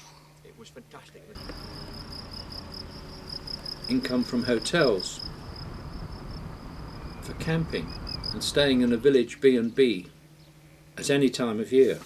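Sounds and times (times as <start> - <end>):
cricket trilling: 1.4 - 9.1
low background rumble: 1.4 - 9.2.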